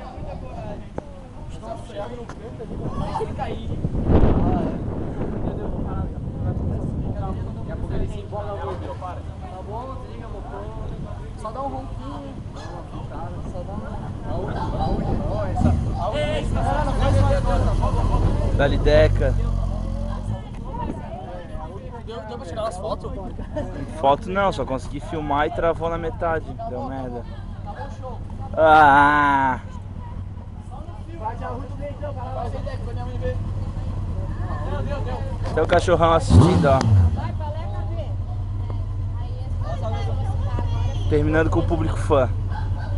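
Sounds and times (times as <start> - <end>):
motorcycle engine rumbling: 0.0 - 42.9
onlookers chattering: 0.0 - 42.9
voices calling out: 8.2 - 42.9.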